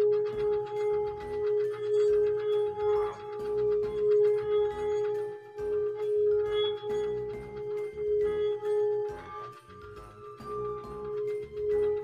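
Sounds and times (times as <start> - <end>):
singing bowl ringing tone: 0.0 - 12.0.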